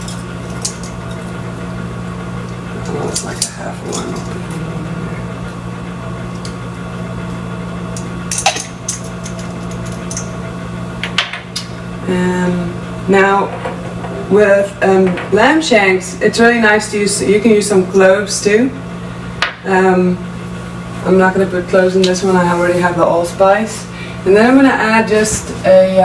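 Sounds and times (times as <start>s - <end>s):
appliance motor humming: 0.0s - 26.0s.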